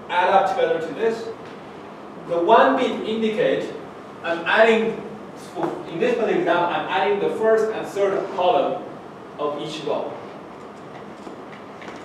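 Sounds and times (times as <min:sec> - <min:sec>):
room hum and hiss: 0:00.0 - 0:12.0.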